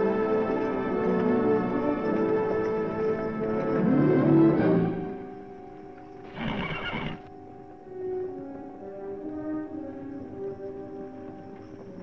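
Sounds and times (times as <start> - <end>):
film score music: 0.0 - 12.0
horse whinnying: 6.2 - 7.3.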